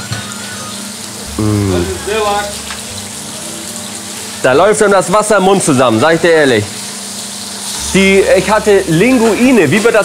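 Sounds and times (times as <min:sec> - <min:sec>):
food sizzling in pans: 0:00.0 - 0:10.0
person speaking: 0:01.3 - 0:02.6.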